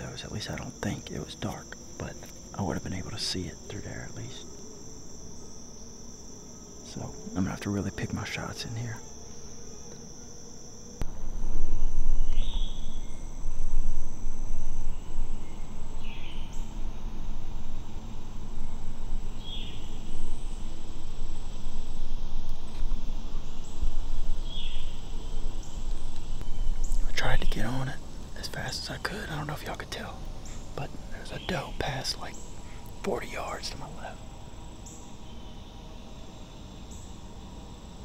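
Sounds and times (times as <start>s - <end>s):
high insect drone: 0.0s - 38.0s
low rumbling noise: 11.0s - 35.8s.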